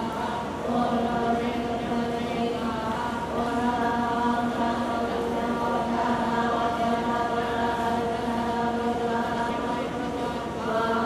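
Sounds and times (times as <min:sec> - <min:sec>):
women chanting in unison: 0:00.0 - 0:11.0.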